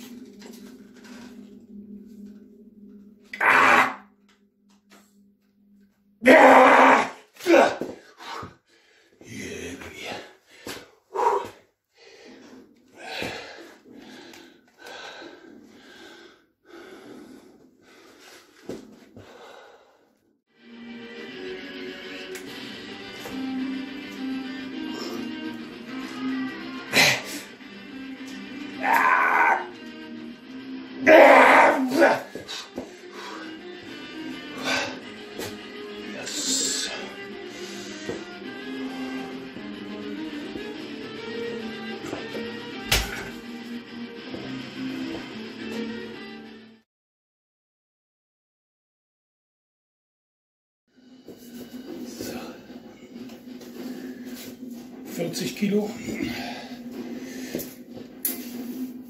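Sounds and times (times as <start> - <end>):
background music: 0.0 - 8.4, 20.5 - 46.8, 51.0 - 59.0
man groaning with effort: 3.3 - 4.0, 6.2 - 8.5, 28.8 - 29.7, 31.0 - 32.7
man grunting: 6.2 - 8.5, 31.0 - 32.4.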